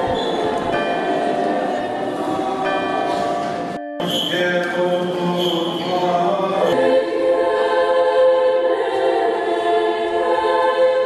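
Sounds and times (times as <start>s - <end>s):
choir chanting long notes: 0.0s - 11.0s.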